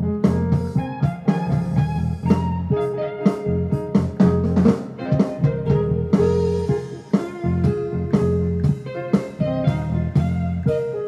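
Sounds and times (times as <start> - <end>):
drum beat: 0.3 - 11.0
guitar-like synth chords: 0.8 - 11.0
synthesizer bass line: 3.4 - 6.8.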